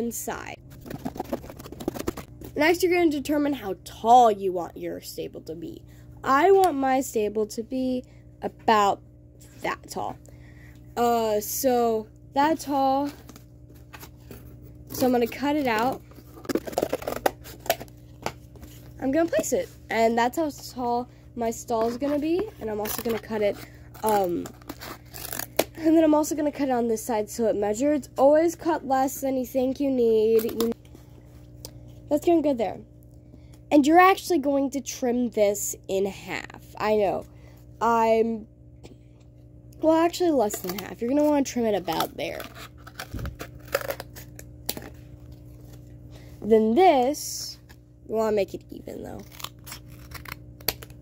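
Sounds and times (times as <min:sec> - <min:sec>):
scissors cutting cardboard: 0:49.2 - 0:50.4.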